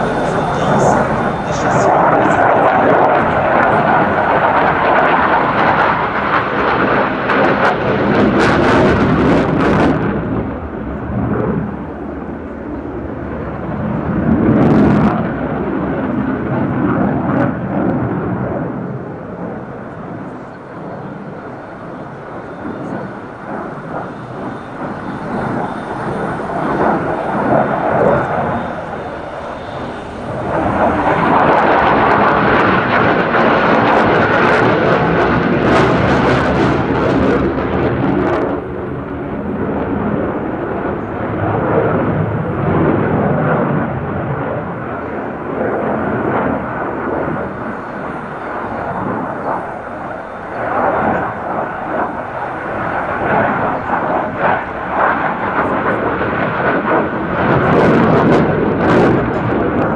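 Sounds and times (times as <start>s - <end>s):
fighter jet engine roar: 0.0s - 59.9s.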